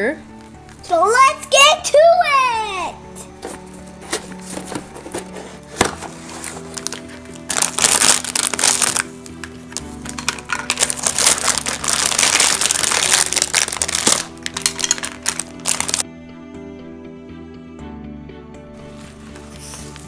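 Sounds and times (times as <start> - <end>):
background music: 0.0 - 20.0
plastic bags crinkling: 6.0 - 16.0.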